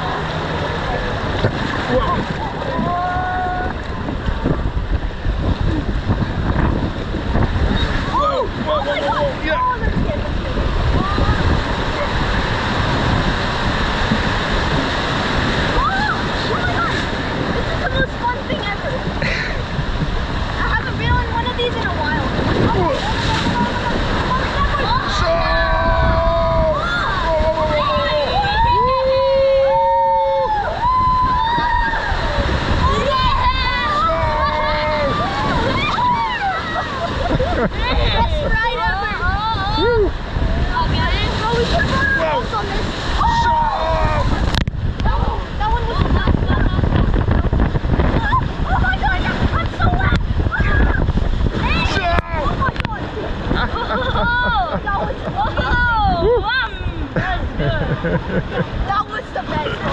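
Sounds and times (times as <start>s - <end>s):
water rushing and splashing: 0.0s - 59.9s
wind buffeting microphone: 0.0s - 59.9s
people calling out: 22.6s - 40.2s, 43.1s - 44.5s.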